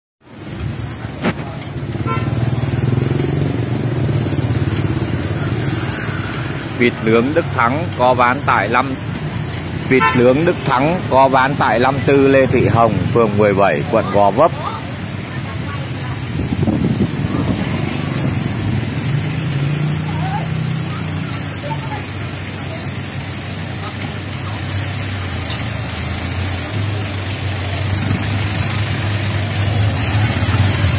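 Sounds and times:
motor vehicle engine running: 0:00.3 - 0:09.9, 0:10.7 - 0:30.9
indistinct voices: 0:04.5 - 0:30.9.

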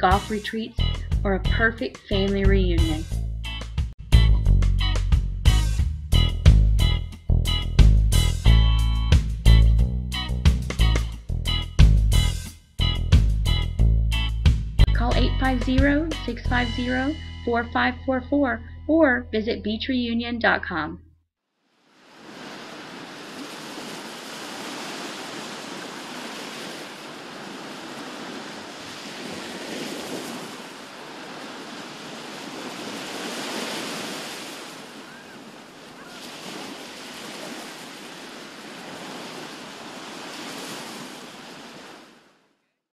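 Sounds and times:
gentle surf on sandy beach: 0:21.7 - 0:42.4.

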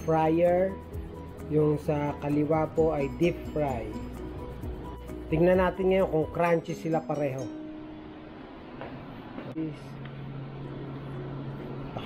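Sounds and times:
steady low hum: 0:07.4 - 0:12.0.

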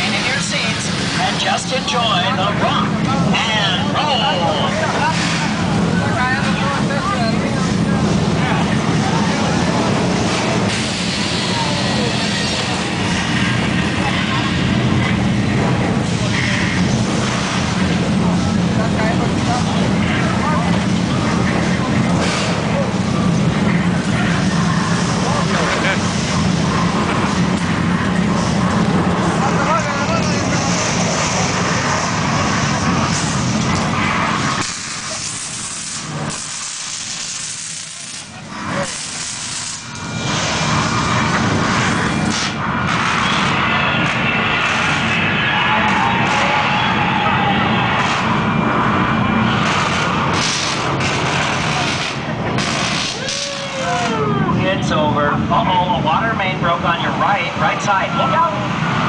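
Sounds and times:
loud rumble and crashing: 0:00.0 - 0:59.0
sparks hissing: 0:34.4 - 0:41.0.

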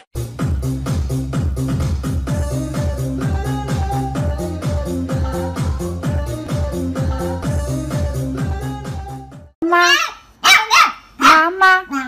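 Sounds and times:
puppy barking in high-pitched yaps: 0:09.8 - 0:12.0.

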